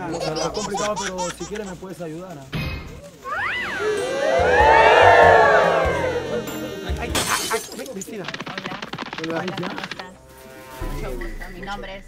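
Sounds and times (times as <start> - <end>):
music sting: 3.3 - 7.2.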